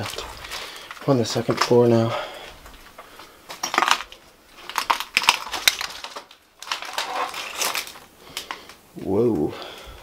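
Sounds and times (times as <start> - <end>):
footsteps crunching over rubble: 0.0 - 10.0.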